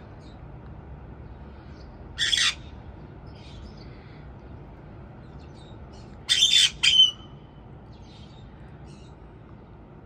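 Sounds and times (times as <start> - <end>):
parrot squawking: 2.2 - 2.7, 6.3 - 7.3.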